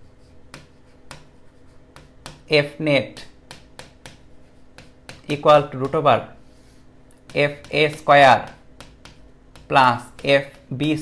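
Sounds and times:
pen clicking on whiteboard: 0.2 - 2.5, 3.1 - 6.0, 7.1 - 11.0.

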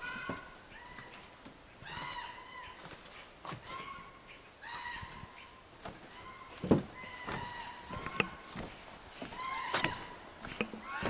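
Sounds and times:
wooden floorboards creaking: 5.8 - 11.0
footsteps knocking on boards: 6.6 - 11.0.

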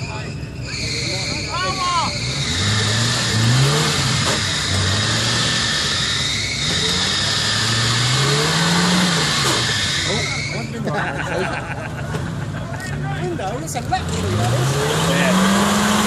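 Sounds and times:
off-road engine revving: 0.0 - 16.0
driving through mud and water: 2.2 - 16.0.

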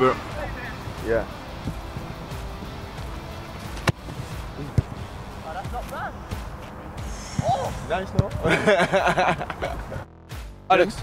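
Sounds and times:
background music: 0.0 - 11.0
football kicked hard: 3.7 - 5.0, 7.4 - 8.5.

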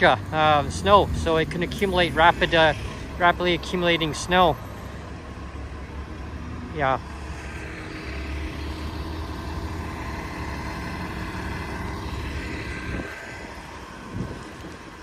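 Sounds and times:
bus engine rumble: 0.0 - 15.0.

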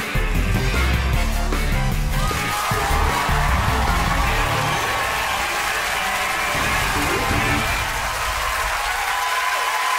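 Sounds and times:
theme tune: 0.0 - 9.2
audience applause and cheering: 1.9 - 9.9.

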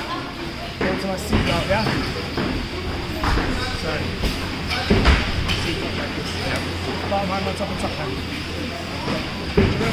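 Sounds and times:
low background hum: 0.0 - 9.9.

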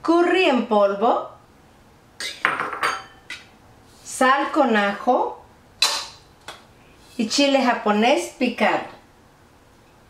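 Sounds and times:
glass dishes clinking: 2.2 - 3.5.

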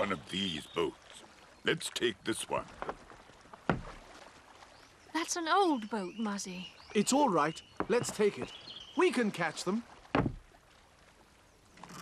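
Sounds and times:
body thumping in wooden boat: 2.8 - 4.3, 7.8 - 8.5, 10.0 - 10.6.

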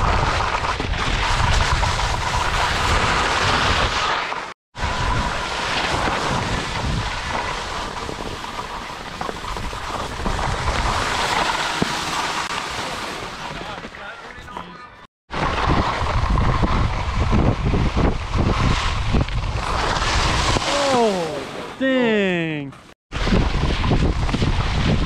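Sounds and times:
skis scraping on snow: 0.0 - 14.7, 15.4 - 21.8, 23.2 - 25.0
wind rushing over microphone: 4.8 - 8.4, 15.3 - 20.7, 23.1 - 25.0.

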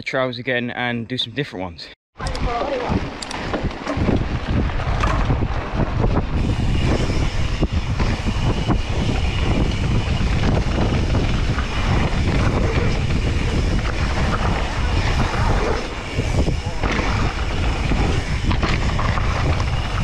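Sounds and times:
wind buffeting microphone: 2.2 - 20.0
bike rattling and knocking: 2.4 - 20.0
bike tyres rumbling on dirt: 2.5 - 20.0.

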